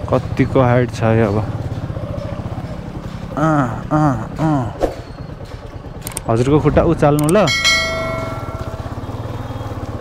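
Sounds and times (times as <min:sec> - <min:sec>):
motorcycle engine putter: 0:04.3 - 0:10.0.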